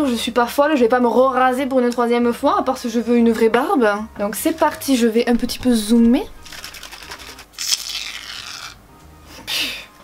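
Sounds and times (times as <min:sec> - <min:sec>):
aerosol can shaken: 0:06.3 - 0:07.8.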